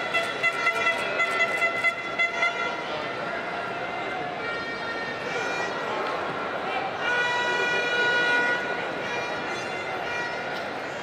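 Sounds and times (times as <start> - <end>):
horn long steady note: 0.0 - 5.9, 6.8 - 10.6
background noise: 0.0 - 11.0.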